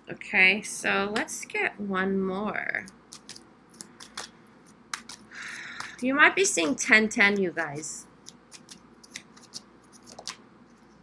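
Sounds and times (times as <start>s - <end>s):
tarot cards clicking: 2.8s - 7.4s, 8.2s - 10.4s
cards rustling: 2.8s - 7.5s, 8.2s - 11.0s.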